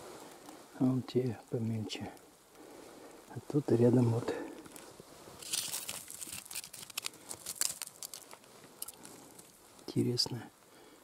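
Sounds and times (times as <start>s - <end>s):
sand and gravel trickling down: 3.3s - 10.2s.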